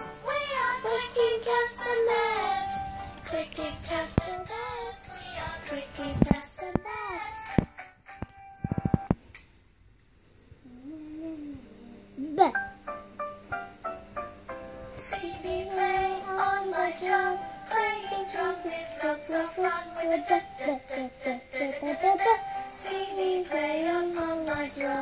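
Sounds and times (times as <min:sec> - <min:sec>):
children's song with sung melody: 0:00.0 - 0:09.1, 0:14.8 - 0:25.0.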